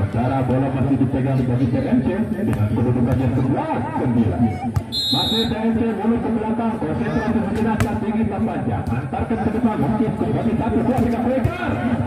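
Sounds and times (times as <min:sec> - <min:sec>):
crowd chatter: 0:00.0 - 0:12.0
referee's whistle blast: 0:04.9 - 0:05.6.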